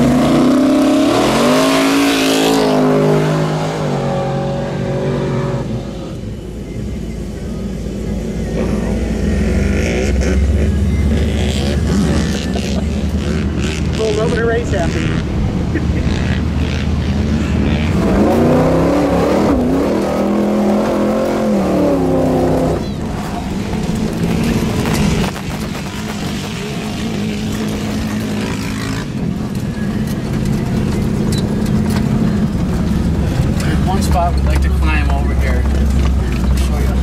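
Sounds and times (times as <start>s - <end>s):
truck engine revving: 0.0s - 6.4s, 7.8s - 37.0s.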